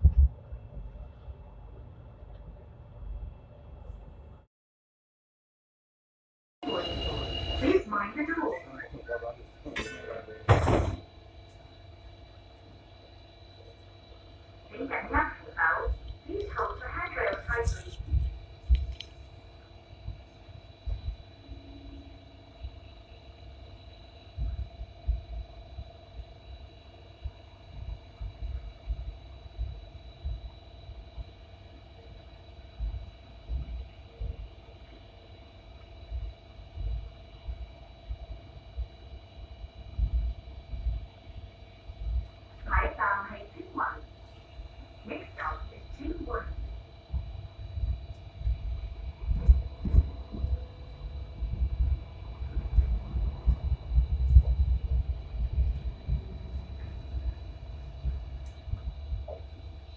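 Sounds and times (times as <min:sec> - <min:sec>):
voice announcement: 0:06.6 - 0:10.5, 0:14.7 - 0:18.2, 0:42.7 - 0:44.1, 0:45.0 - 0:46.5
light rail car rumbling: 0:06.6 - 0:13.0, 0:42.5 - 0:59.9
electrical hum: 0:06.6 - 0:59.9.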